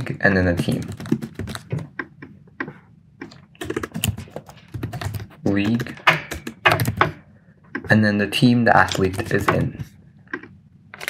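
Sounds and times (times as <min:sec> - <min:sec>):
keyboard typing: 0:00.0 - 0:07.9, 0:08.8 - 0:11.0.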